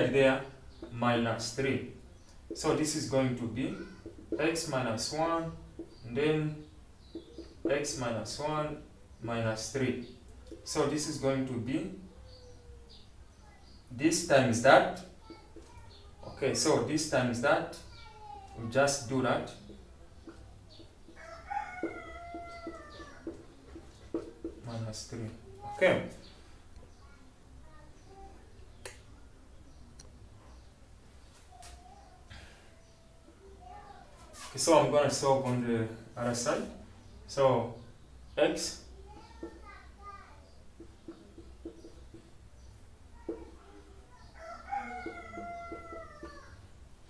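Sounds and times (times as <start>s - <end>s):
marker tapping on whiteboard: 0.8s - 1.0s, 2.3s - 2.9s, 3.8s - 4.8s, 5.7s - 6.0s, 7.0s - 7.9s, 19.4s - 25.4s, 39.2s - 39.6s, 40.8s - 42.4s, 43.3s - 43.6s, 45.0s - 46.5s
rooster crowing: 21.1s - 23.4s, 44.4s - 46.6s.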